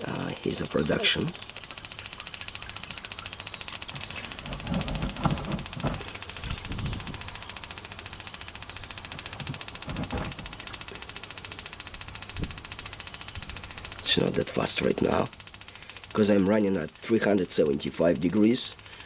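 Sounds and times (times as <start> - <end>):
pump ticking: 0.0 - 19.0.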